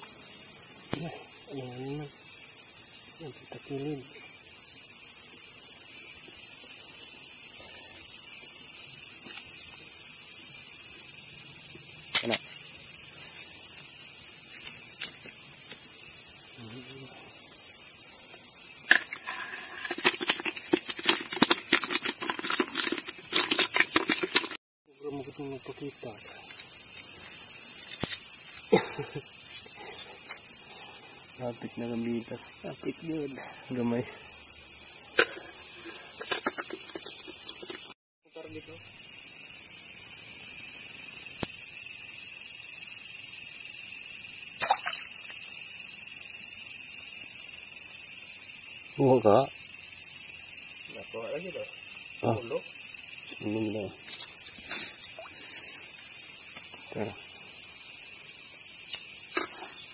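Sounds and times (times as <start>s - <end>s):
night insects chorus: 0.0s - 59.9s.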